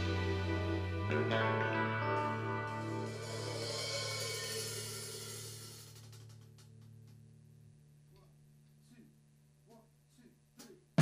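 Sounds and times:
rock band final chord ringing: 0:00.0 - 0:05.6
cymbal wash: 0:00.0 - 0:06.2.

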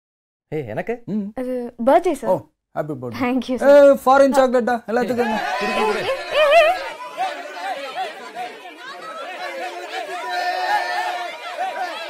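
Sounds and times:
crowd shouting and cheering: 0:05.0 - 0:12.0
long held cry: 0:05.0 - 0:12.0.

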